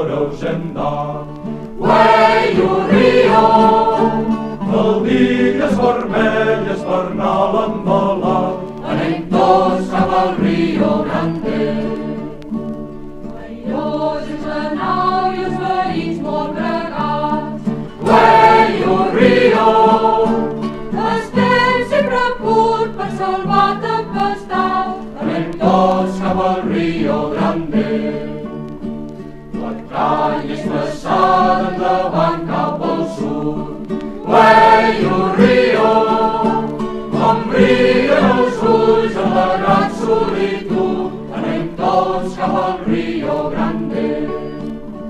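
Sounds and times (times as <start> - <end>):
group singing folk song: 0.0 - 45.0.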